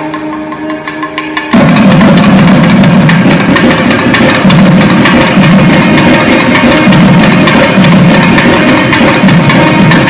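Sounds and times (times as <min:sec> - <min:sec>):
barrel drum fast strokes: 0:00.2 - 0:10.0.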